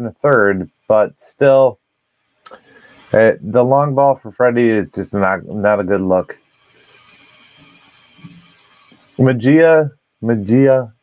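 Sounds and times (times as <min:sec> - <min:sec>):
faint high hum: 0:02.5 - 0:11.0.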